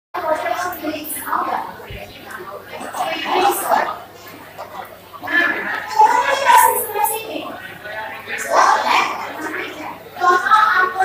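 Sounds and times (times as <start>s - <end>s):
crowd noise: 0.2s - 11.0s.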